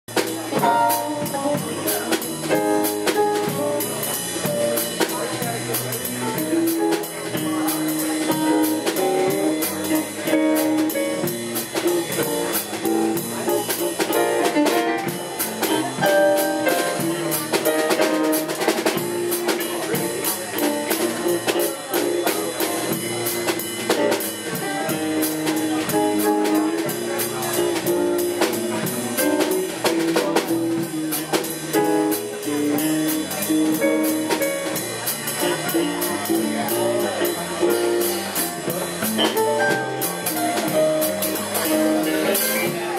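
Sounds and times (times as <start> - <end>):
drum kit beat: 0.0 - 42.9
guitars: 0.1 - 42.9
electric keyboard: 0.6 - 3.6.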